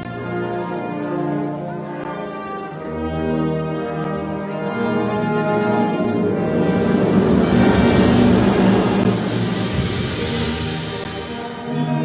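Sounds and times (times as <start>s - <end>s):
procession band with brass: 0.0s - 12.0s.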